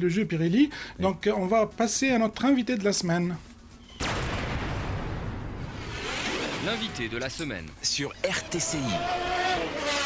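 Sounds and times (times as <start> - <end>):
sudden blast of dense noise: 4.0 - 7.2.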